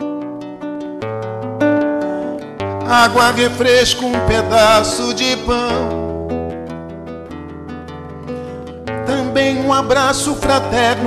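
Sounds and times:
acoustic guitar: 0.0 - 11.0
person singing: 0.0 - 11.0.

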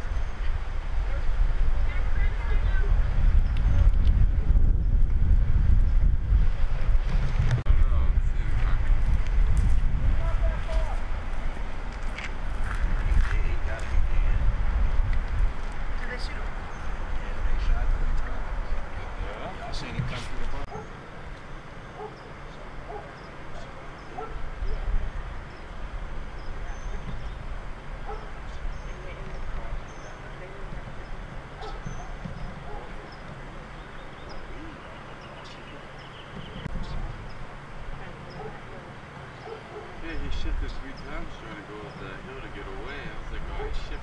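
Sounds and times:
wind buffeting microphone: 0.0 - 20.9, 22.8 - 35.2
dog yapping: 22.0 - 22.2.

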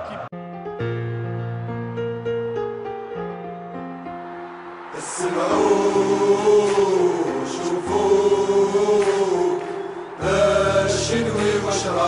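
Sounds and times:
crowd chanting in unison: 4.4 - 12.0.

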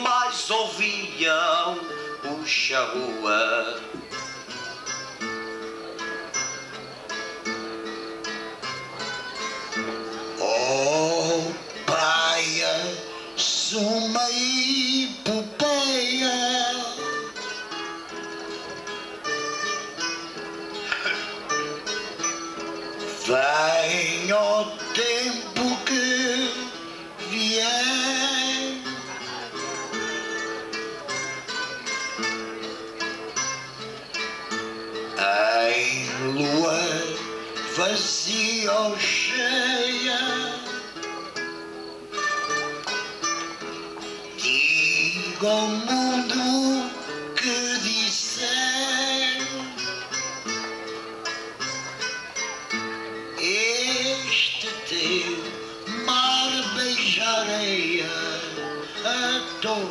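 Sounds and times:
man singing: 0.0 - 4.0, 10.4 - 17.3, 23.1 - 29.5, 35.2 - 40.9, 44.4 - 50.1, 53.4 - 59.9
guitars picked and strummed: 0.0 - 59.9.

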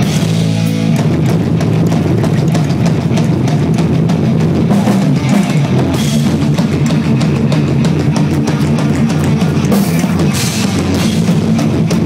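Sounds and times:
distorted electric guitar: 0.0 - 12.0
drum kit: 0.0 - 12.0
heavy metal band playing: 0.0 - 12.0.

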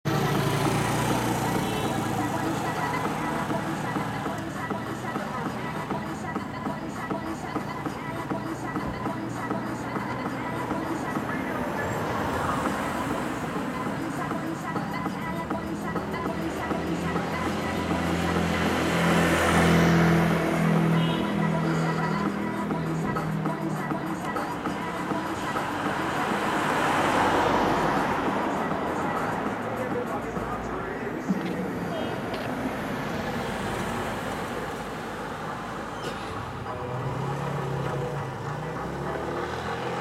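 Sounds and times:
indistinct voices: 0.0 - 40.0
roadside traffic noise: 0.0 - 40.0
vehicle passing: 0.0 - 40.0.

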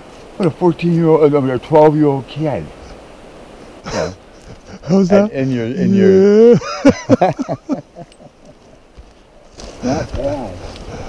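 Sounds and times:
man laughing loudly: 3.9 - 8.8.

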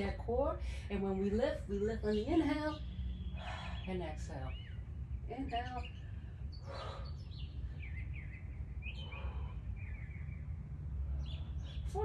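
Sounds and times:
birds chirping: 0.0 - 12.0
steady low rumble: 0.0 - 12.0.

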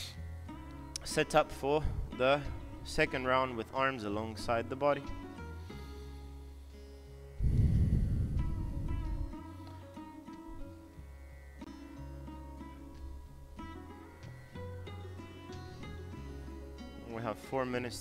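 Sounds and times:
plucked string notes: 0.0 - 18.0
low sustained drone: 5.7 - 12.6
deep swell: 7.4 - 9.7.

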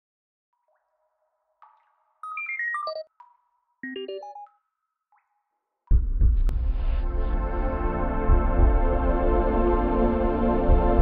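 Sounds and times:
electronic computer bleeps: 2.2 - 4.6.

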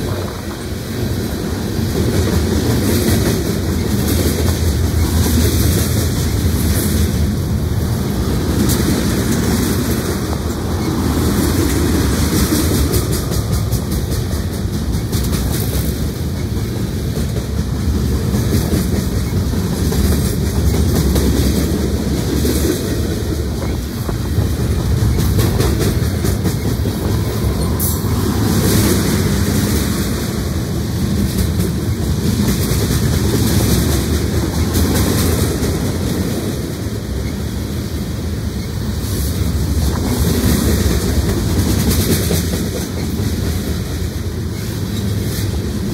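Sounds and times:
wheels clicking over rail joints: 0.0 - 37.5, 38.5 - 45.9
freight train rumbling past: 0.0 - 45.9.

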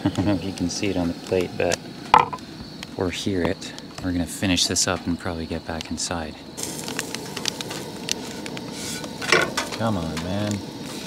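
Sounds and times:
gas burner hissing: 0.0 - 11.0
light ticks and crackles: 2.7 - 6.0, 6.6 - 11.0.

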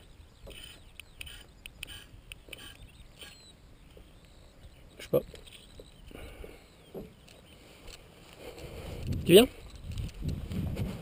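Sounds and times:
harness rustles and clicks: 5.0 - 6.2, 6.8 - 11.0.

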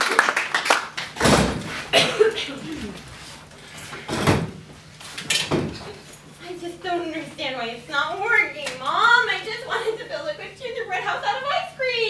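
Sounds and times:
chair clunking on stage floor: 1.2 - 3.1, 4.0 - 6.0.

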